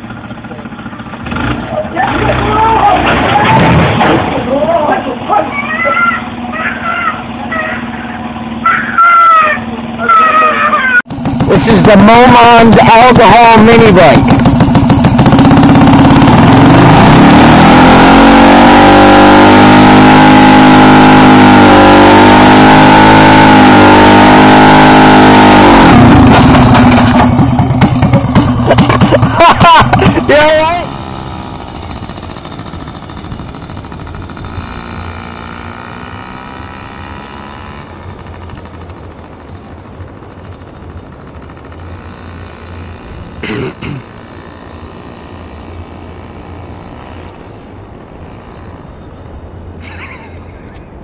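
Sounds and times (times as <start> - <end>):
mini bike engine revving: 0.0 - 50.8
bike crashing: 2.0 - 5.0.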